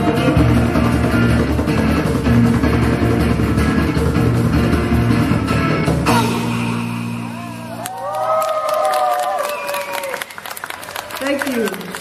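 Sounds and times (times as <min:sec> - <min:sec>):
live band playing rock music: 0:00.0 - 0:07.9.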